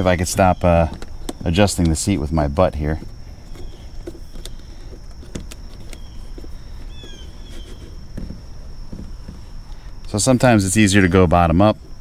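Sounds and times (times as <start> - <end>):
bird chirp: 0.0 - 2.3, 3.4 - 4.9, 5.7 - 10.1.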